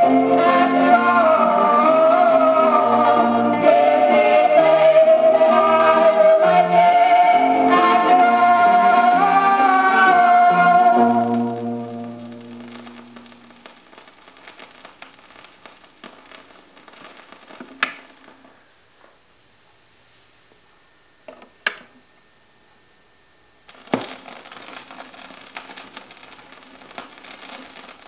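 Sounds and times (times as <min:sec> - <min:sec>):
gospel music: 0:00.0 - 0:13.6
vinyl surface crackle and pops: 0:10.9 - 0:19.2, 0:23.6 - 0:28.0.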